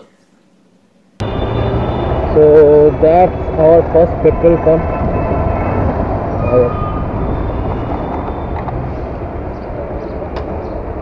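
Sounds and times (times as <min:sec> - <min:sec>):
street noise: 0:01.2 - 0:11.0.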